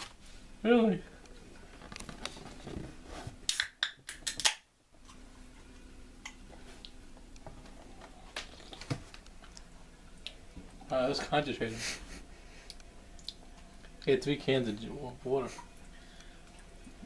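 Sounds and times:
faint steady hum: 0.0s - 17.0s.

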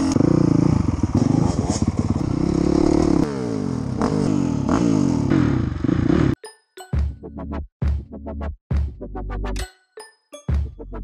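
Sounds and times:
dirt bike engine revving: 0.0s - 6.4s.

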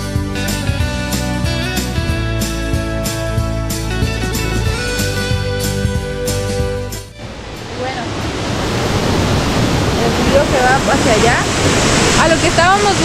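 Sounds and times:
waterfall splashing into pool: 7.8s - 13.0s.

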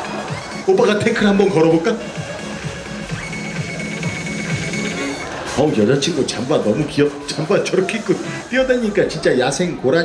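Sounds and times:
dance music with kick-drum beat: 0.0s - 8.8s.

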